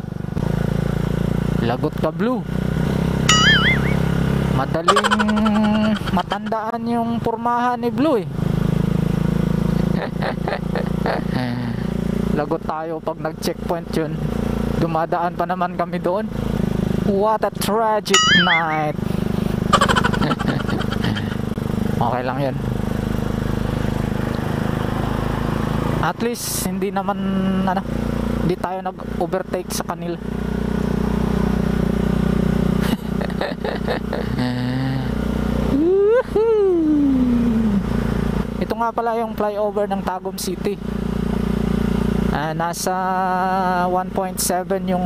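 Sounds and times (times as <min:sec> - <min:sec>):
motorcycle engine running: 0:00.0 - 0:12.5, 0:16.2 - 0:35.9
short vocal sounds: 0:18.2 - 0:19.0, 0:34.4 - 0:35.1, 0:35.7 - 0:37.8.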